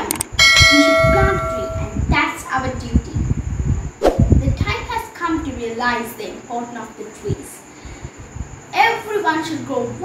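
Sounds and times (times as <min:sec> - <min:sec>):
bright bell ding: 0:00.4 - 0:01.9.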